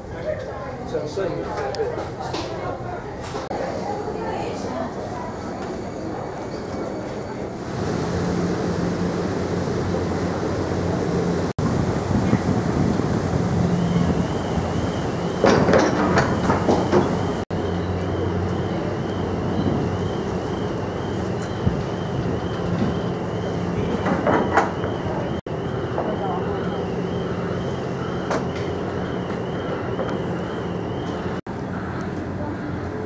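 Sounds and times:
ship engines low rumble: 0.0s - 33.0s
churning water: 7.6s - 31.0s.

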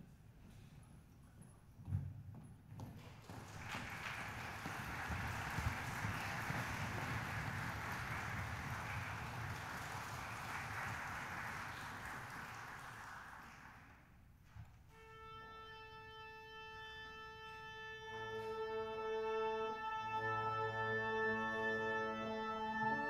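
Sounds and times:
audience applause: 3.1s - 14.1s.

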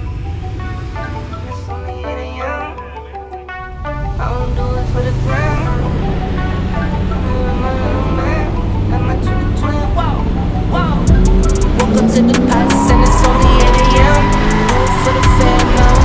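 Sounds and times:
background music: 0.0s - 16.0s
car engine revving: 0.0s - 16.0s.

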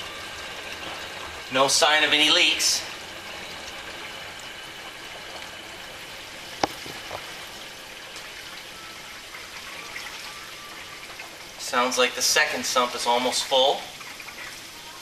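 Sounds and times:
water rushing into filter housing: 0.0s - 15.0s.

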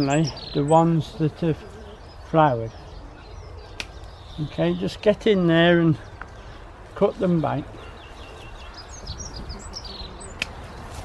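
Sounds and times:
small birds chirping: 0.0s - 11.0s
secateurs snipping a stem: 10.3s - 10.6s.

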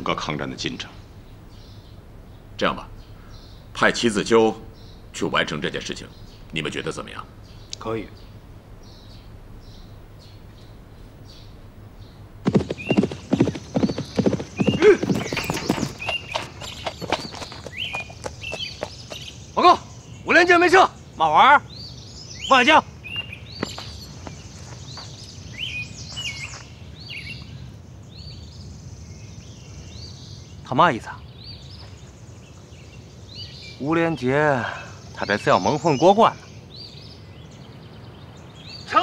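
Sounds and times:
birds chirping: 0.0s - 39.0s
low background hiss: 0.0s - 39.0s
horse hooves on dirt: 7.6s - 19.6s, 23.2s - 26.8s.

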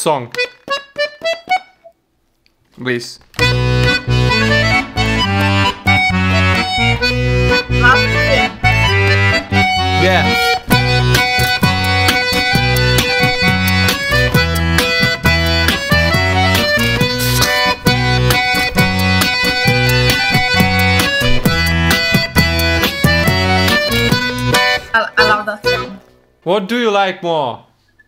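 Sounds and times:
button accordion playing lively tune: 3.4s - 26.0s.

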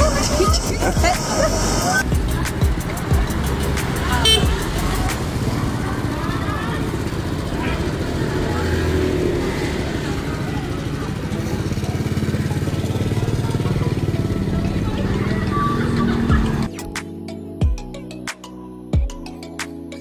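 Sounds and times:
motor scooter engine: 0.0s - 16.7s
street traffic: 0.0s - 18.3s.

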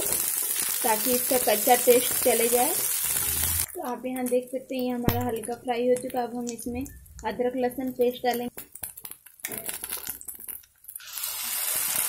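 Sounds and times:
hot oil sizzling: 0.0s - 12.0s.

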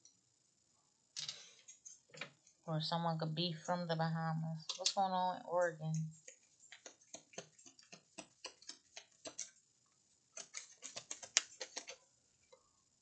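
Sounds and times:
cards being shuffled: 10.4s - 12.0s.

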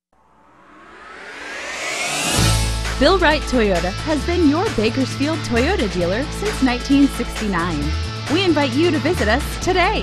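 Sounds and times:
rising whoosh sound effect: 0.2s - 3.0s.

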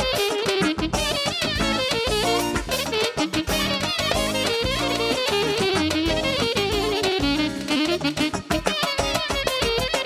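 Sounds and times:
plucked or keyboard backing: 0.0s - 10.0s
saxophone melody: 0.0s - 10.0s
dance beat: 0.7s - 10.0s.

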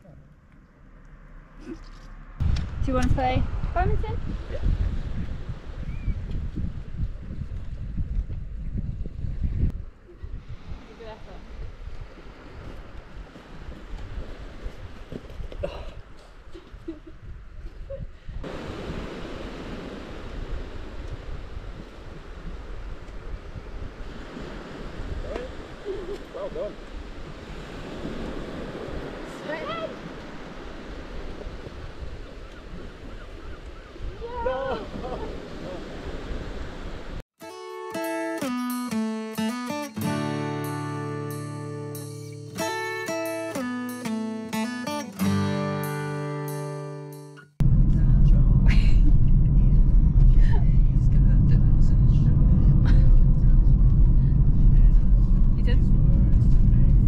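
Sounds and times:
wind: 0.0s - 57.0s
surf: 18.4s - 57.0s
plucked music: 37.4s - 47.5s.

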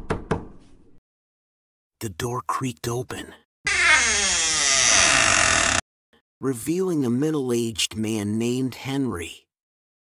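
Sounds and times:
door creaking open: 3.7s - 5.8s.

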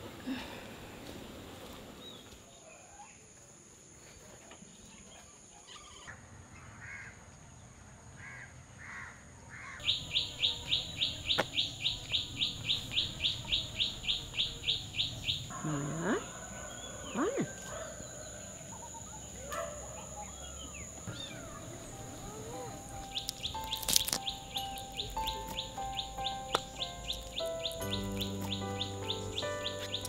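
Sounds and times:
bird chirping rapidly: 9.8s - 17.5s, 20.0s - 30.0s
soft background music: 21.1s - 30.0s.

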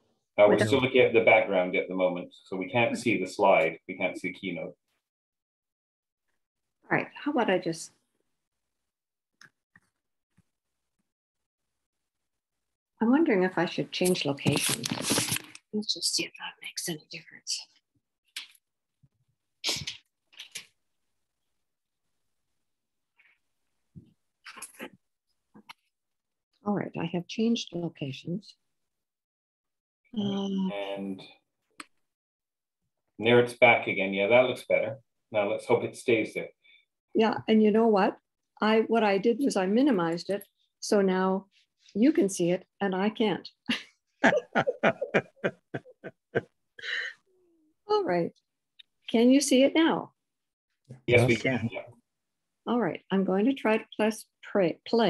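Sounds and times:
person laughing: 44.2s - 47.1s, 51.1s - 51.7s.

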